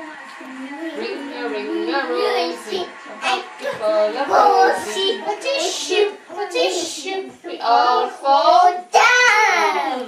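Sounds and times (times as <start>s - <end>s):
young child singing: 1.6s - 10.0s.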